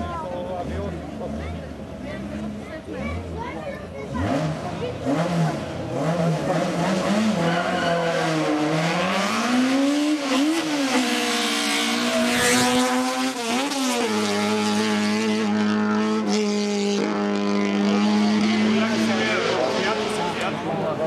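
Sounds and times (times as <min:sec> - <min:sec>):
race car engine revving: 0:00.0 - 0:21.0.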